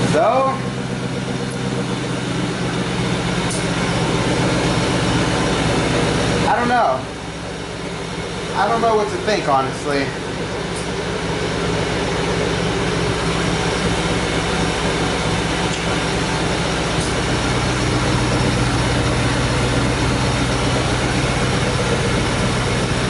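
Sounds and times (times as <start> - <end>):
car engine idling: 0.0 - 23.0.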